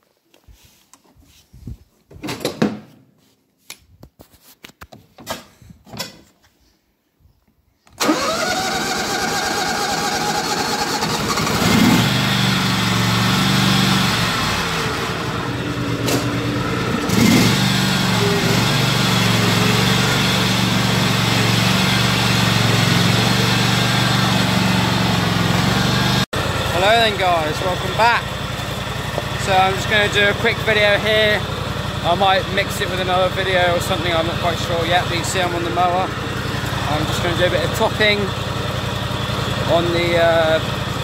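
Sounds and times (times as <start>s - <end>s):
starter motor cranking: 8.0s - 15.4s
mower engine running: 8.0s - 41.0s.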